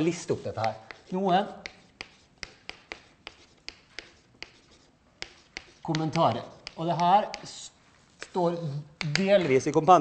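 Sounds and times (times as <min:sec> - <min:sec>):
chalk scratching on blackboard: 0:00.0 - 0:08.5
chalk tapping: 0:00.0 - 0:09.6.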